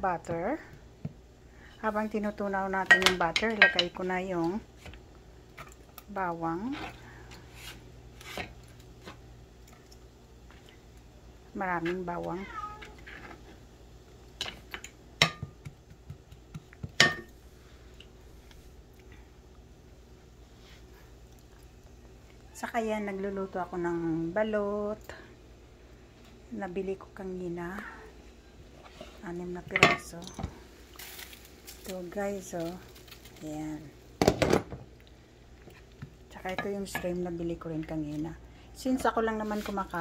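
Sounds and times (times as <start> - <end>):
utensil knocking on frying pan: 15.2 - 17.3.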